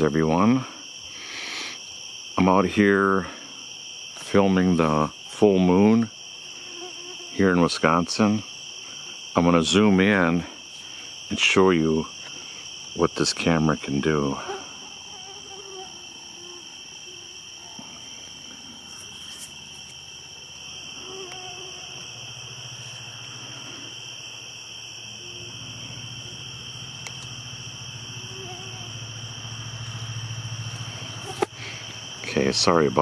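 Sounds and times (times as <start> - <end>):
crickets trilling: 0.0 - 33.0.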